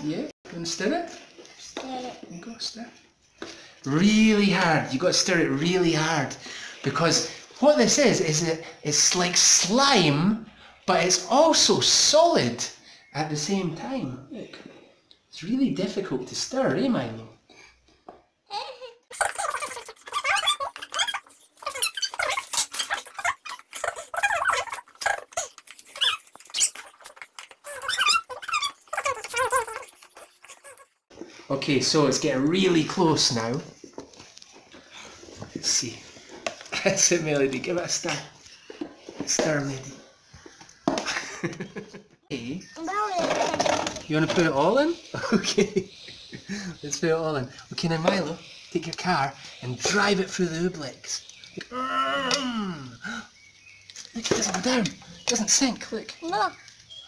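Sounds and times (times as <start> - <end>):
young children squealing and babbling: 51.6 - 52.9.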